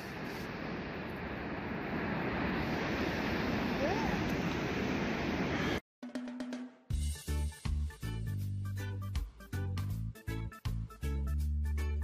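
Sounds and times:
ocean surf: 0:00.0 - 0:05.8.

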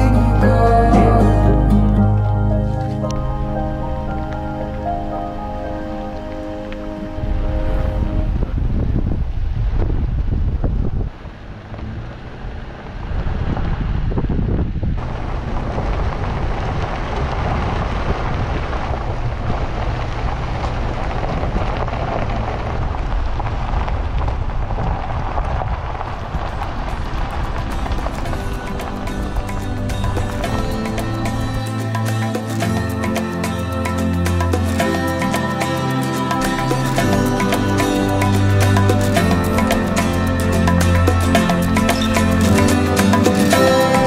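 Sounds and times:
background music: 0:00.0 - 0:08.5, 0:27.5 - 0:44.0
tyres rumbling on gravel: 0:00.0 - 0:44.0
wind on microphone: 0:05.8 - 0:32.9.

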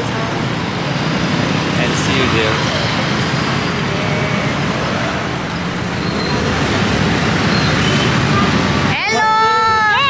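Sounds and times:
street traffic passing: 0:00.0 - 0:10.0.

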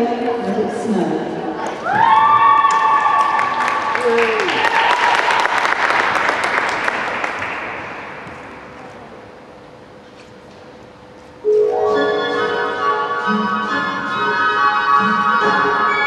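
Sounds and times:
audience applauding and cheering: 0:01.8 - 0:08.2.

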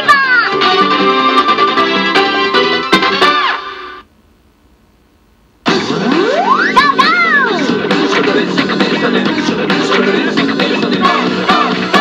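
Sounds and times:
upbeat machine music: 0:05.6 - 0:12.0
bouncing electronic tones: 0:05.9 - 0:07.0.

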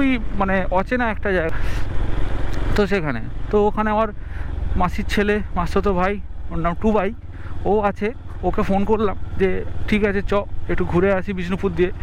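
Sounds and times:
man talking: 0:00.0 - 0:01.7, 0:02.6 - 0:12.0
motorcycle engine running: 0:00.0 - 0:12.0
road noise: 0:00.0 - 0:12.0.

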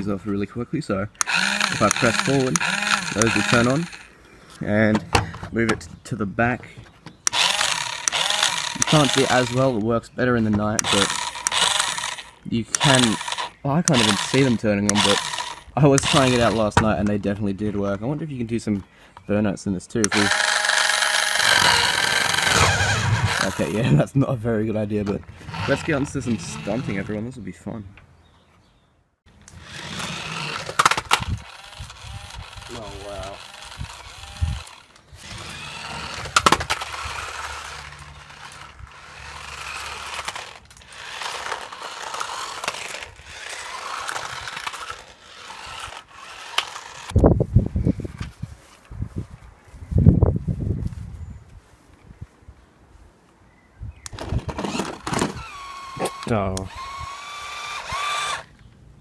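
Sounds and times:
small electric motor whirring: 0:01.2 - 0:04.1, 0:07.3 - 0:09.8, 0:10.8 - 0:16.8, 0:20.0 - 0:23.9, 0:25.3 - 0:27.2, 0:29.4 - 0:47.2, 0:54.1 - 0:58.7.

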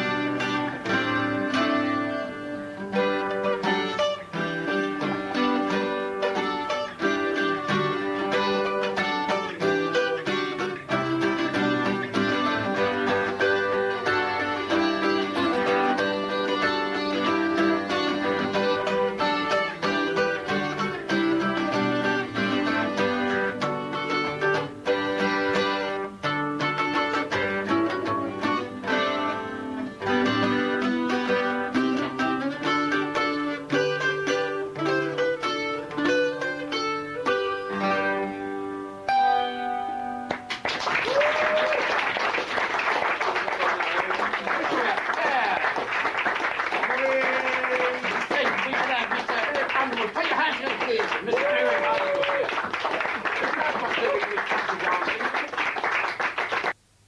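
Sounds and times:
acoustic guitar dance tune: 0:00.0 - 0:57.0.

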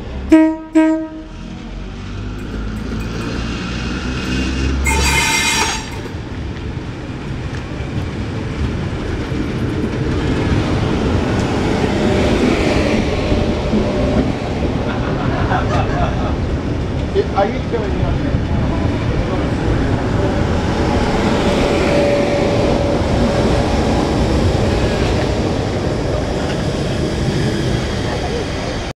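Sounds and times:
train running rumble: 0:00.0 - 0:28.9
train horn blasts: 0:00.3 - 0:01.4, 0:04.8 - 0:06.2
train wheels and carriages: 0:01.0 - 0:28.9.

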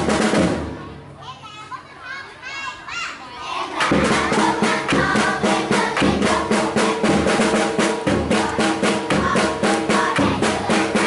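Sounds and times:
children calling out: 0:00.8 - 0:07.3
drum beat with music: 0:03.8 - 0:11.0.

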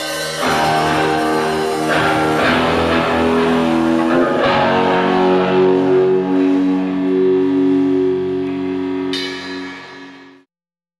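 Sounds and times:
electric guitar chords ringing: 0:00.0 - 0:10.5.

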